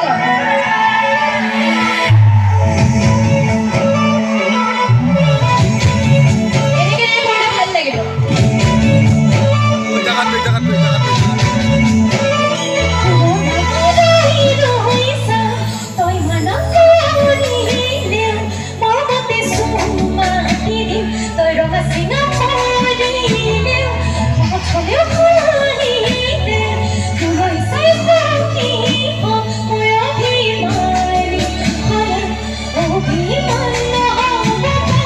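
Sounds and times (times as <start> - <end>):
live band playing: 0.0 - 35.0
woman singing into microphone: 0.0 - 35.0
held bass note: 10.1 - 11.3
woman singing wavering melody: 13.0 - 24.0.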